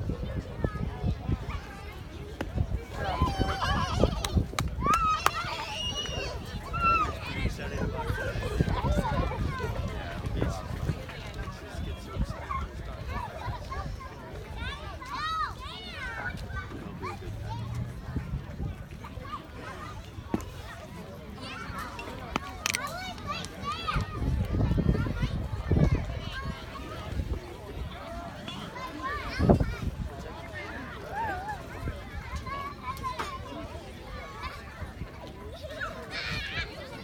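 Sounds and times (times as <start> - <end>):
children chattering: 0.0 - 37.0.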